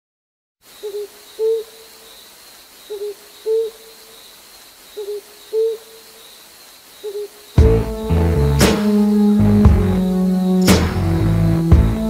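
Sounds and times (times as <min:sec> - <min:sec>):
owl hooting: 0:00.7 - 0:02.2, 0:02.8 - 0:04.2, 0:04.9 - 0:06.3, 0:07.0 - 0:10.6.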